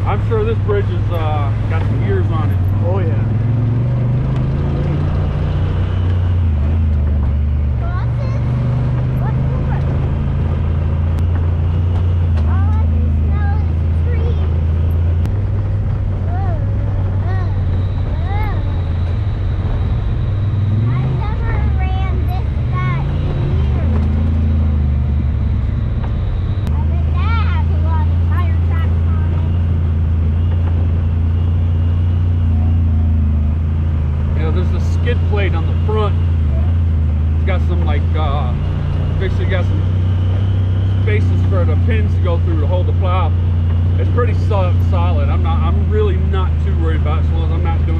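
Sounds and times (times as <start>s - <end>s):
off-road vehicle engine running: 0.0s - 47.9s.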